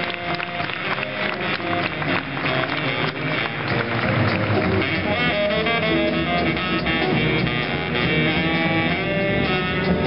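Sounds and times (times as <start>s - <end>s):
baritone saxophone solo: 0.0s - 10.0s
big band rhythm section: 0.0s - 10.0s.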